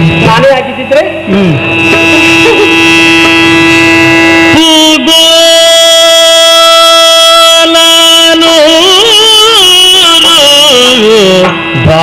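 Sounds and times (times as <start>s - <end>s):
steady drone: 0.0s - 12.0s.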